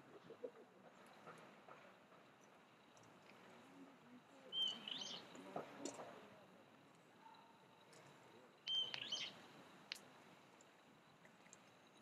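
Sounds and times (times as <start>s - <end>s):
faint bird calls: 4.4s - 5.3s, 8.6s - 9.4s.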